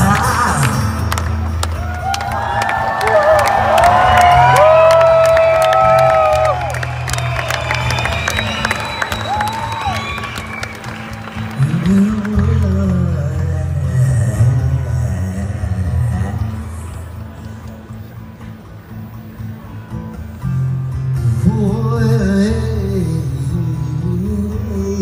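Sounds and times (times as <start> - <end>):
audience clapping and cheering: 0.0 - 14.2
acoustic guitar: 0.0 - 25.0
bass: 0.0 - 25.0.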